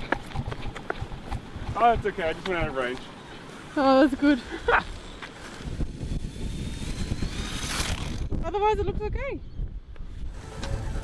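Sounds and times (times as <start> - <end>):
gear motors whining: 2.9 - 9.0
wind rumble on microphone: 5.5 - 11.0.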